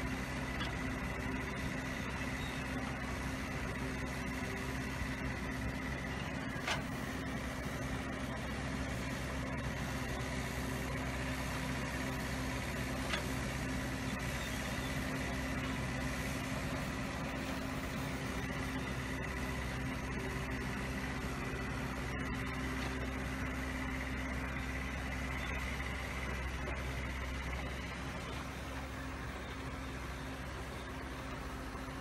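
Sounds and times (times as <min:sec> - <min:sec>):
machinery engine running steadily: 0:00.0 - 0:32.0.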